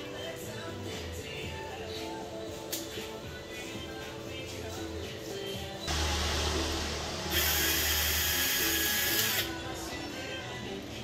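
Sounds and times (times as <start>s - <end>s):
background music: 0.0s - 11.0s
cordless screwdriver whining: 7.3s - 9.6s.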